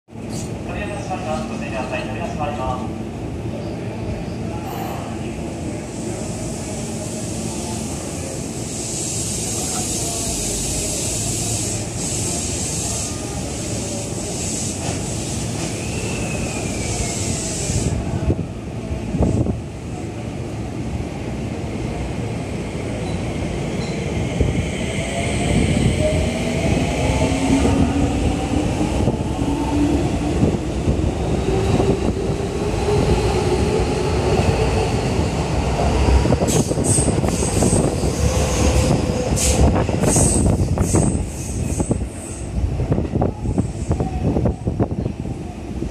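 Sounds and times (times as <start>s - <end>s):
train air hiss: 5.8s - 18.2s, 36.4s - 42.6s.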